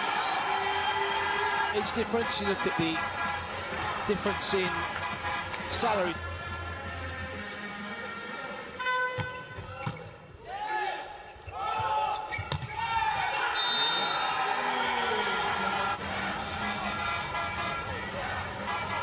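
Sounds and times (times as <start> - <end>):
crowd cheering and shouting: 0.0 - 3.0, 10.4 - 19.0.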